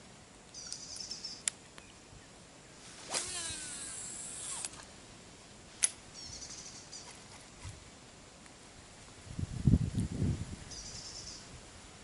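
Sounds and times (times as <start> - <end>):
fishing reel spool whirring: 3.2 - 4.8
fishing reel click: 3.5 - 4.8.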